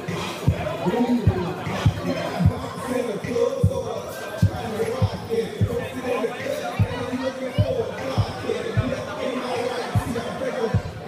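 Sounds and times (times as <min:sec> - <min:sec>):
dance music: 0:00.0 - 0:11.0
heavy kick drum thumping: 0:04.4 - 0:05.8.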